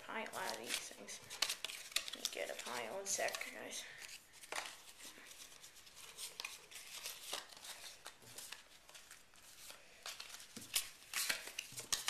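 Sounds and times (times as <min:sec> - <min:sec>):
crinkling: 0:00.0 - 0:12.0
trading cards rustling and clicking: 0:00.0 - 0:12.0.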